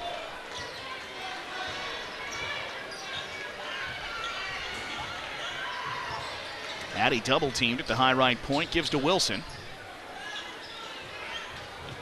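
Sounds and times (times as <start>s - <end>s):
murmur of crowd chatter: 0.0s - 12.0s.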